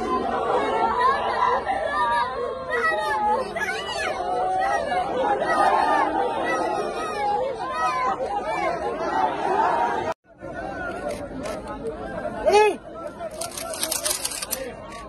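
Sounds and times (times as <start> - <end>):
crowd talking and calling out: 0.0 - 15.0
quiet chatter: 10.3 - 15.0.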